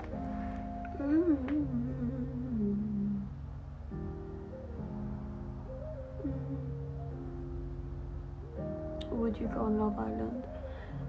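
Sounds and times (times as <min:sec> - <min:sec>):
background music: 0:00.0 - 0:11.0
woman humming: 0:00.9 - 0:03.4, 0:06.2 - 0:06.9.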